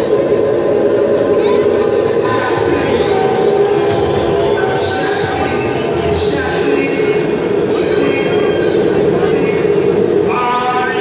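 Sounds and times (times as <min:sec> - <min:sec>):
faint voice over loudspeakers: 0:00.0 - 0:11.0
stadium crowd din: 0:00.0 - 0:11.0.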